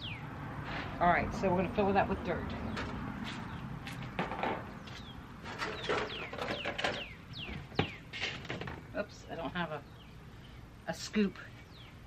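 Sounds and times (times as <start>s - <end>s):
plastic containers clattering: 5.4s - 8.9s.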